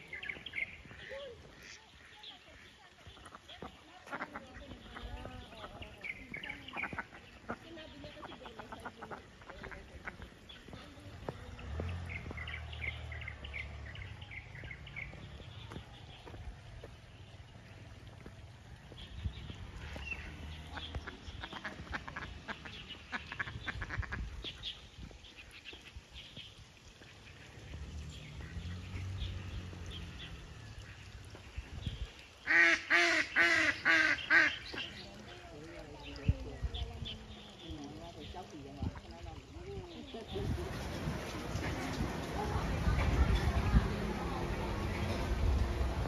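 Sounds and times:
ducks calling: 0.0 - 16.4, 19.8 - 31.6, 32.3 - 36.3
small birds chirping: 0.0 - 45.7.

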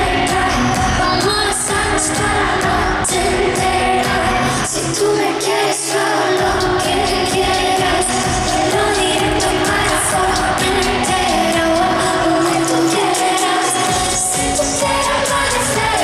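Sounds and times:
pop song over loudspeakers: 0.0 - 16.0
woman singing: 0.0 - 16.0.

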